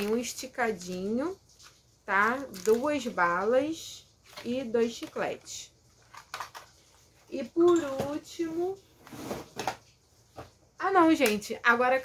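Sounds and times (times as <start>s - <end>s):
rustling and handling noise: 0.0s - 11.5s.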